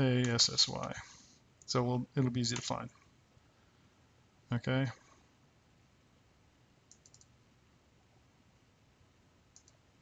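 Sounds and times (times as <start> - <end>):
computer mouse clicks: 6.9 - 7.4, 9.5 - 9.8.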